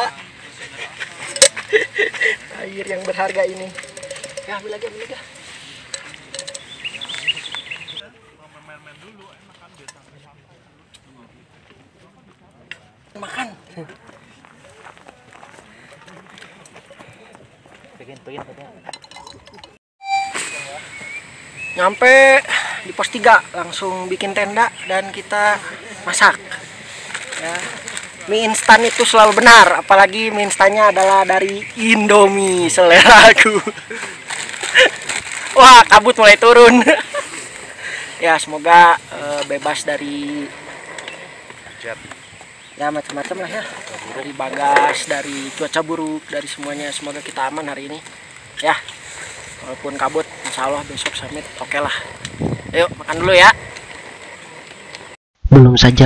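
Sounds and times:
faint voices: 0.0s - 19.7s
outdoor background noise: 0.0s - 56.0s
metallic clinks of cookware: 3.0s - 6.8s, 18.9s - 19.8s.

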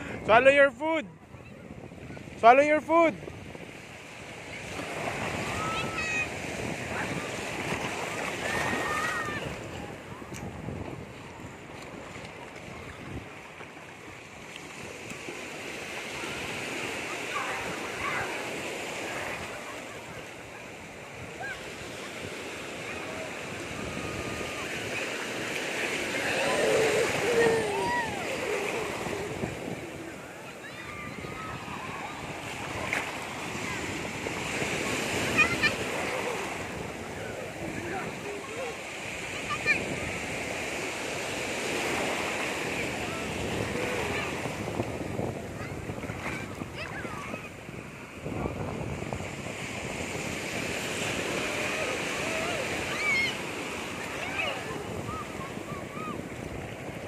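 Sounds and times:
sea waves washing over shallows: 0.0s - 57.0s
wind buffeting microphone: 1.0s - 15.6s, 16.2s - 57.0s.

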